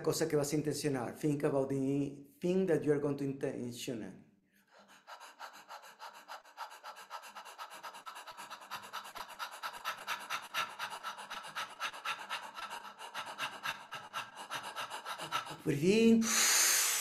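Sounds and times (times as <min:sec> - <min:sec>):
man panting rapidly: 0:04.7 - 0:17.0.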